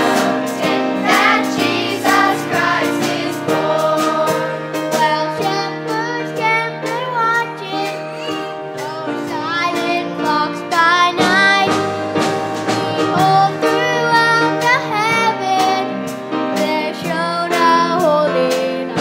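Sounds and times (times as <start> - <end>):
children singing: 0.0 - 10.2
instrumental accompaniment: 0.0 - 19.0.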